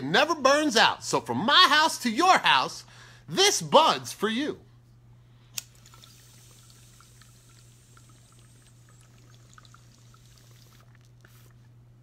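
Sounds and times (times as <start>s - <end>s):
water bubbling in a bong: 5.8s - 11.6s.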